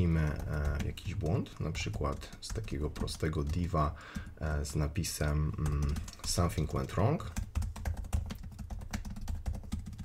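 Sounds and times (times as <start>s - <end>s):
keyboard typing: 0.0s - 10.0s.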